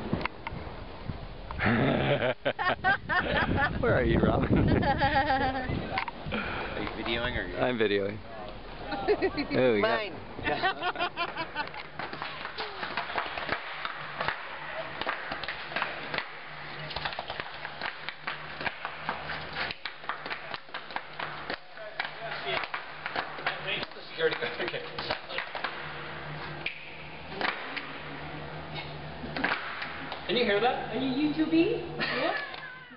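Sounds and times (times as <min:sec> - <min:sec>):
low steady hum: 0:00.0 - 0:32.9
hand claps and body slaps echoing: 0:11.2 - 0:26.0, 0:26.6 - 0:28.0, 0:29.4 - 0:30.3
shuffling footwork on concrete: 0:11.8 - 0:26.8.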